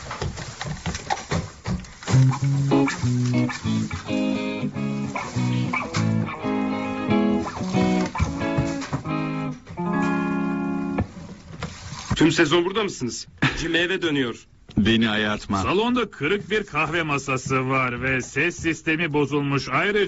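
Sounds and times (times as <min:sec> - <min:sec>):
plucked guitar music: 0:02.1 - 0:11.1.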